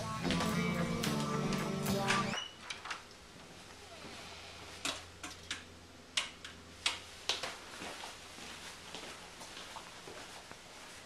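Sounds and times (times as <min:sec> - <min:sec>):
guitar music: 0:00.0 - 0:02.4
sharp clicks and light knocks: 0:04.8 - 0:07.6.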